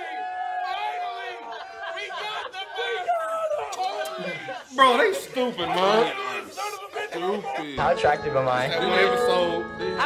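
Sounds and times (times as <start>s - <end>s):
men shouting and chattering: 0.0s - 10.0s.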